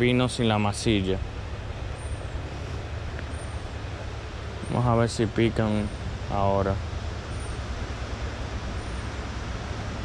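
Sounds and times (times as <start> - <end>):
creek water rushing: 0.0 - 10.0.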